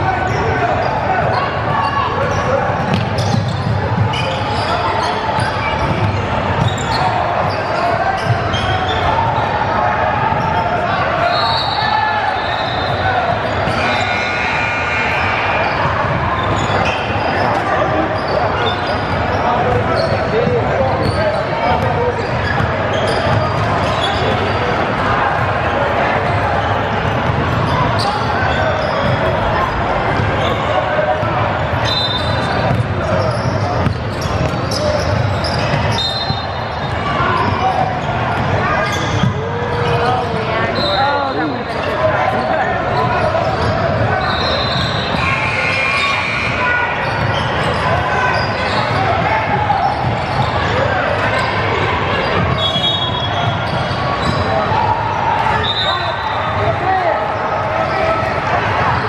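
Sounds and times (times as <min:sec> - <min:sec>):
sneaker squeaks: 0:00.1 - 0:09.6, 0:10.3 - 0:59.0
voices calling out: 0:00.1 - 0:59.0
ball bouncing on hardwood court: 0:02.8 - 0:04.2, 0:32.7 - 0:32.9, 0:33.8 - 0:35.9.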